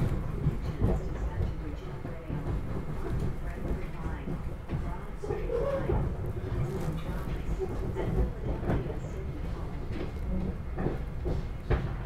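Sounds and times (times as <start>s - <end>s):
faint knocks and rattles: 0.0s - 12.0s
train rumbling along track: 0.0s - 12.0s.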